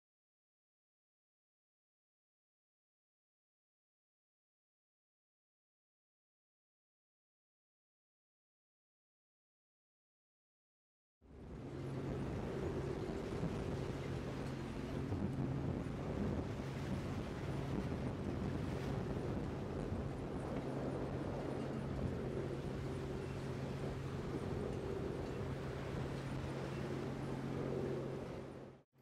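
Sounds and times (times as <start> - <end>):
boat engine droning: 11.3 - 28.8
rush of open sea: 11.3 - 28.8
wind on microphone: 11.4 - 28.8.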